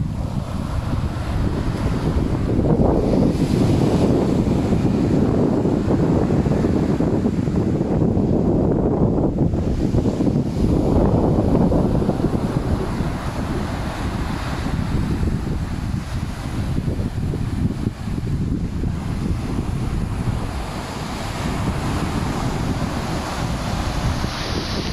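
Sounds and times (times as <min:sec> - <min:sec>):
small waves breaking on shore: 0:00.0 - 0:24.9
wind buffeting microphone: 0:00.0 - 0:24.9.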